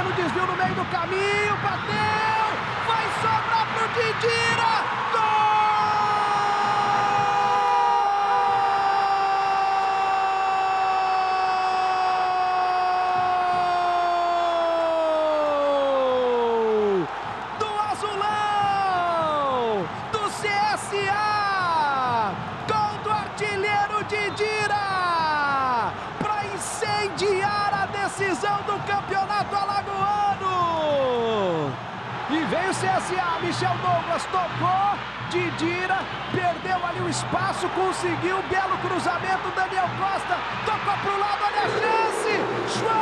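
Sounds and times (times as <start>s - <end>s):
commentator shouting goal: 0.0s - 31.8s.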